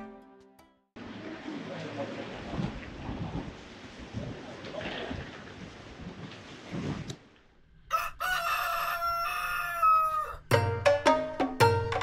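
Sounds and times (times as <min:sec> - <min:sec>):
rooster crowing: 0:07.8 - 0:10.5
music with beat and percussion: 0:10.5 - 0:12.0.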